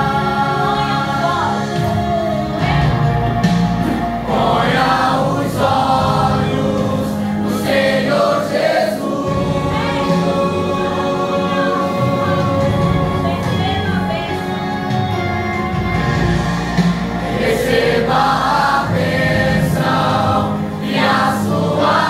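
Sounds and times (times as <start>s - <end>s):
congregation singing: 0.0s - 22.0s.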